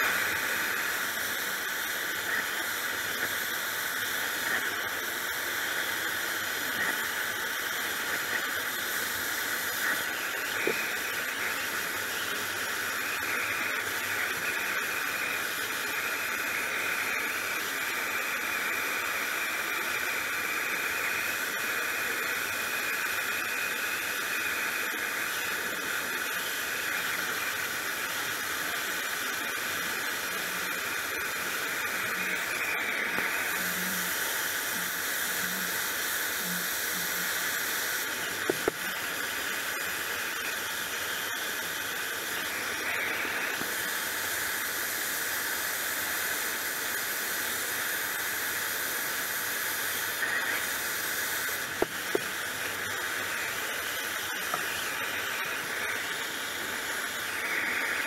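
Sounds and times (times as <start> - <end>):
brighter sharp hiss: 0.0 - 58.0
gas torch hissing: 0.0 - 58.0.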